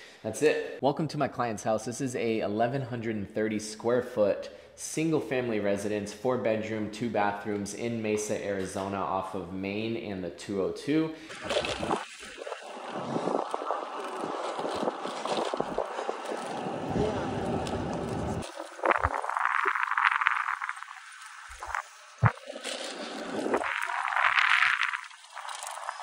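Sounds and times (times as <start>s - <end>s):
wind rushing over microphone: 11.5s - 20.9s.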